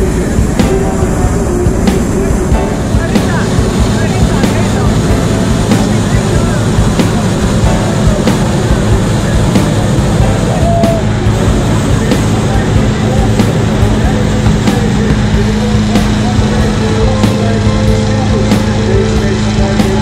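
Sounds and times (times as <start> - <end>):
background music: 0.0 - 20.0
people's voices: 0.0 - 20.0
propane burner roaring: 0.0 - 20.0.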